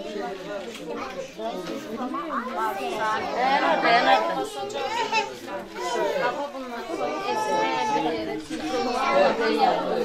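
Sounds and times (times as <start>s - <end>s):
indistinct group chatter: 0.0s - 10.0s.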